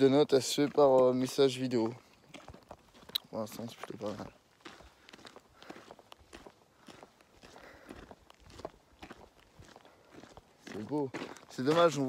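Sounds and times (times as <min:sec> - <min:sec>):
soft footsteps: 0:00.0 - 0:12.0.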